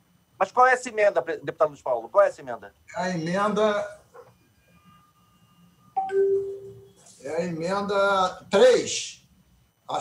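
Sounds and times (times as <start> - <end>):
electronic chime: 4.6 - 7.0.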